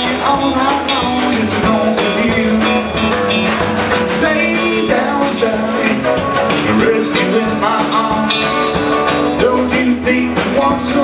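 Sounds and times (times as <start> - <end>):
acoustic guitar: 0.0 - 11.0
drum beat: 0.0 - 11.0
electric guitar: 0.0 - 11.0.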